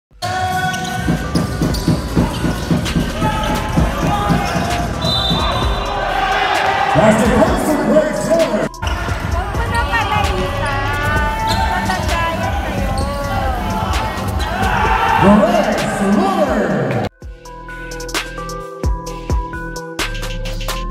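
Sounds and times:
players calling out: 0.2 - 17.1
basketball dribbling on hardwood: 0.9 - 5.7.

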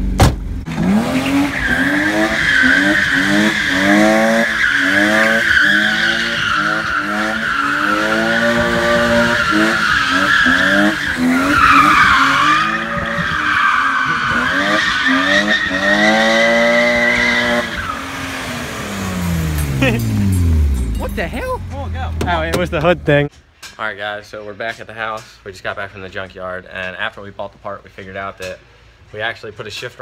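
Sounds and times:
car engine revving: 0.0 - 23.3
tyres squealing on asphalt: 0.9 - 19.8.

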